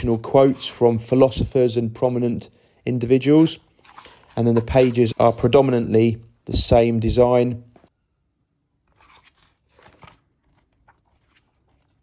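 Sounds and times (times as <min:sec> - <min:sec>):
paper pages being turned: 0:00.0 - 0:00.8, 0:03.3 - 0:05.8, 0:08.9 - 0:12.0.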